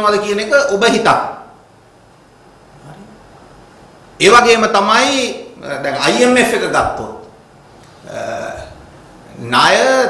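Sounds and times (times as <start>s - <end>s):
man speaking: 4.2s - 7.3s, 8.0s - 10.0s
man's low vocal sound: 8.0s - 9.4s.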